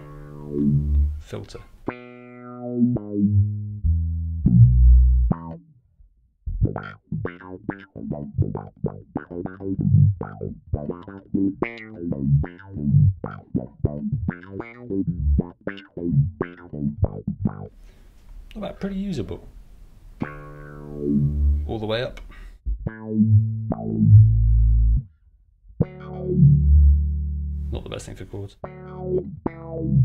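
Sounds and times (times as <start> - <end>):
electric bass with auto-wah: 0.0 - 1.2, 1.9 - 5.6, 6.5 - 17.7, 20.2 - 21.7, 22.7 - 25.1, 25.7 - 27.8, 28.6 - 30.0.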